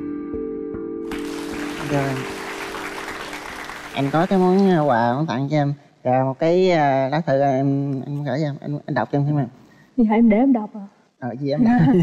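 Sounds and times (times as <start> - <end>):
soft background music: 0.0 - 5.5
studio audience applauding: 1.1 - 5.3.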